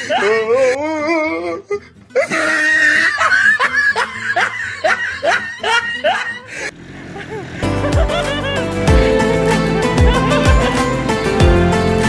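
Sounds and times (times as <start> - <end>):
person laughing hard: 0.0 - 11.4.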